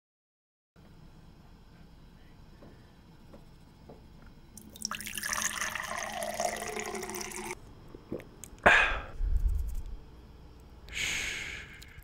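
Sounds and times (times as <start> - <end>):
water pouring into glass: 4.6 - 7.6.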